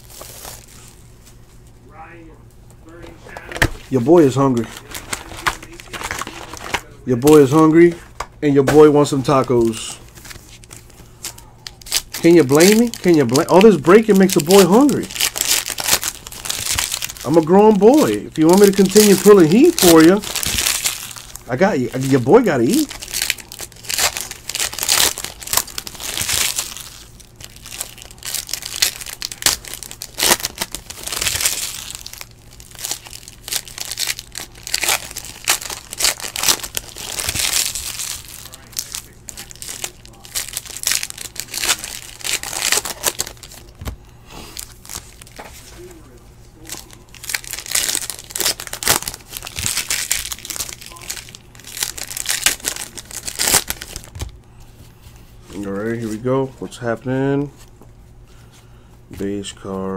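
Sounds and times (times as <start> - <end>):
foil wrappers crinkling and tearing: 0.0 - 1.4, 2.9 - 57.0.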